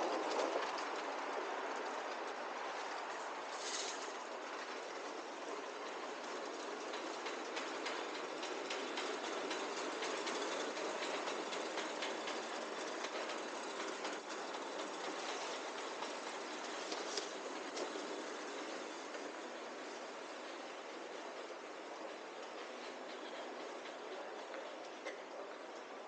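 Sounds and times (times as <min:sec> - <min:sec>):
trolley rattling on tiled floor: 0:05.8 - 0:20.0.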